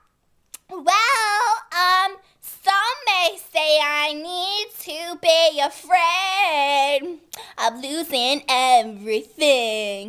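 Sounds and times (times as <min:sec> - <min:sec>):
girl singing in a high voice: 0:00.6 - 0:10.0.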